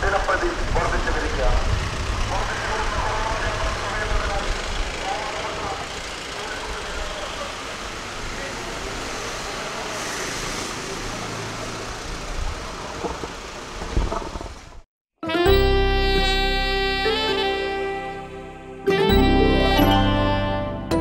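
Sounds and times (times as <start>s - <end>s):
vehicle driving past: 1.0s - 14.8s
faint voices: 2.3s - 10.0s.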